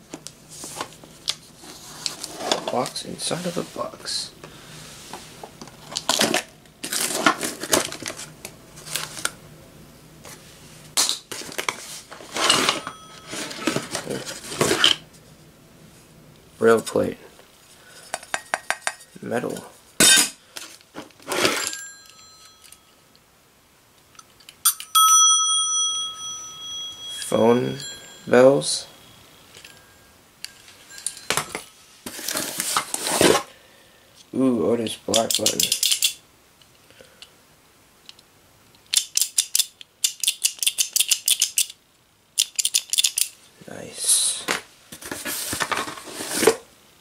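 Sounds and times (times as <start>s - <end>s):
telephone bell ringing: 12.8s - 13.6s, 24.7s - 30.2s
sharp metallic clicks and rattles: 35.1s - 36.2s, 38.9s - 41.8s, 42.4s - 43.4s.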